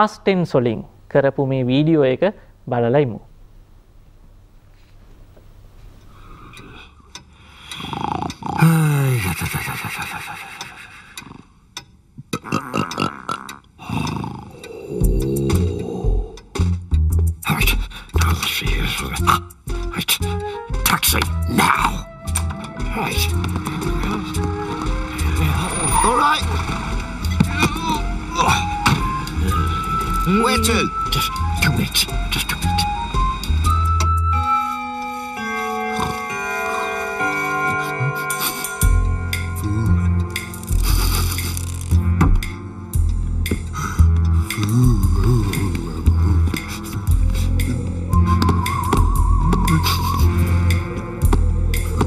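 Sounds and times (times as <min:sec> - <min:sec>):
cartoon character snoring: 0:07.7 - 0:09.1, 0:12.4 - 0:16.4, 0:44.6 - 0:48.0
soft keyboard-like music notes: 0:14.6 - 0:52.0.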